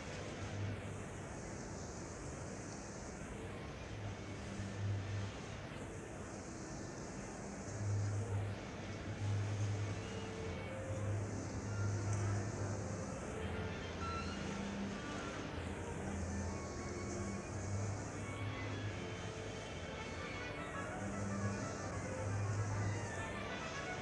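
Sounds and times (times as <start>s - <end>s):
steady noisy hiss: 0.0s - 24.0s.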